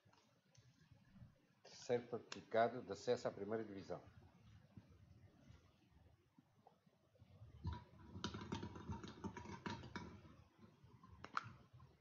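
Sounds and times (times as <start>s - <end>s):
balls clicking in glass bowl: 7.7s - 11.7s.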